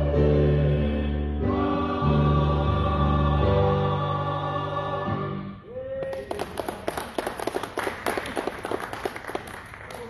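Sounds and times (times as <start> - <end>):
congregation clapping: 6.0 - 10.0.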